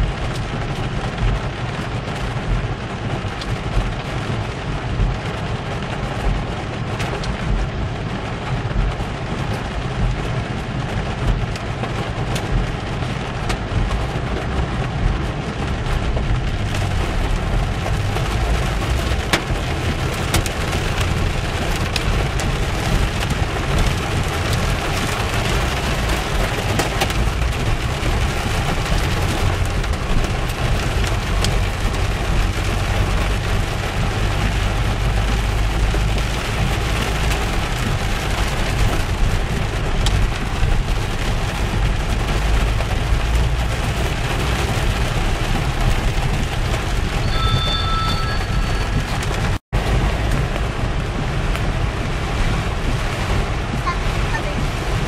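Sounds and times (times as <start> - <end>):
heavy rain on car roof: 0.0 - 55.0.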